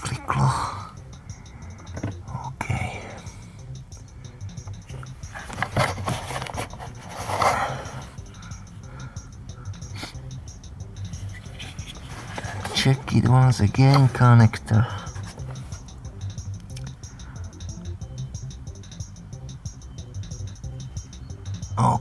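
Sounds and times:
steady low hum: 0.0 - 21.8
scrapes and rustles of plastic parts: 5.3 - 7.9, 11.4 - 13.2.

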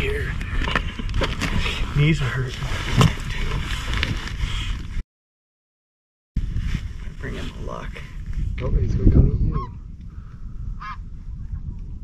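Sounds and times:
wind buffeting microphone: 0.0 - 5.0, 6.4 - 12.0.

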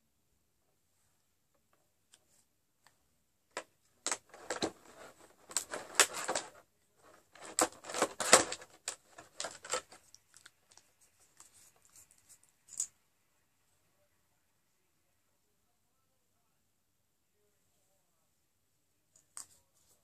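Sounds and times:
small plastic parts clicking: 3.5 - 10.9.

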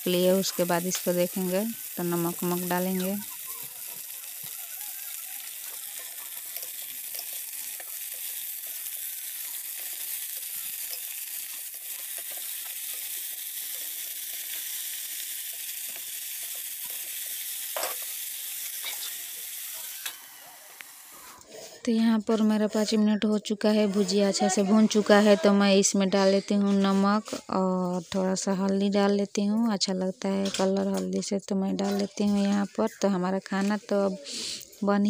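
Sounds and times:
potatoes sizzling in oil: 0.0 - 21.4
spatula scraping a pan: 3.0 - 19.9.

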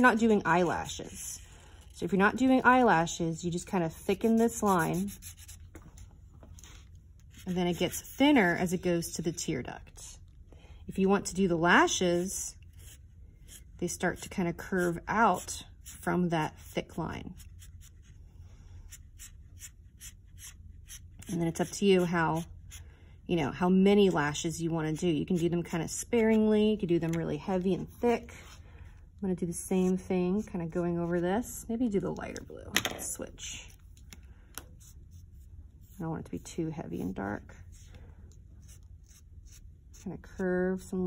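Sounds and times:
marker scratching on paper: 3.8 - 5.8.

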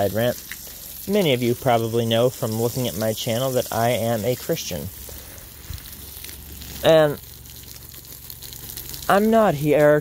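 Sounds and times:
hose spraying water: 0.0 - 10.0.

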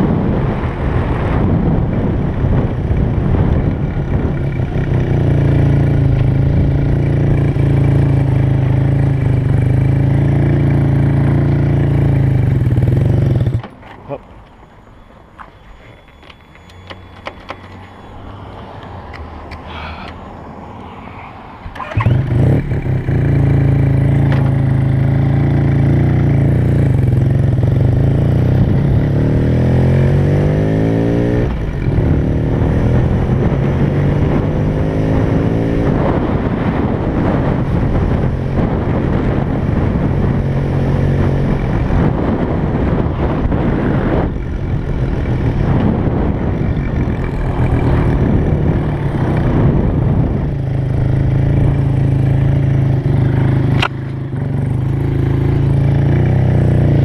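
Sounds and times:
motorcycle engine idling and accelerating: 0.0 - 57.0.

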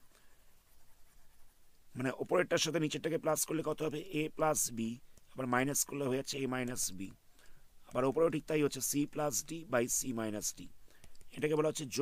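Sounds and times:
stylus scratching on pen tablet: 0.0 - 1.7.

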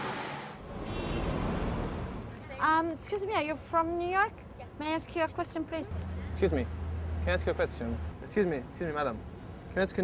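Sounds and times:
traffic: 0.0 - 10.0.

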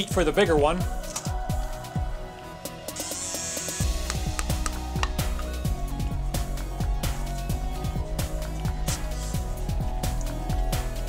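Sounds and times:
background music with bass beat: 0.0 - 11.0.

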